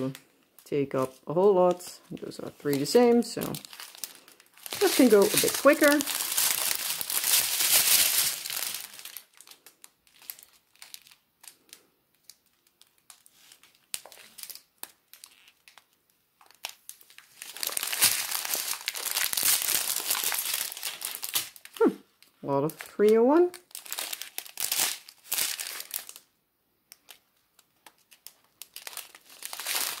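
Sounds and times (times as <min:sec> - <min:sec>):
plastic bags crinkling: 0:00.0 - 0:26.3, 0:26.9 - 0:30.0.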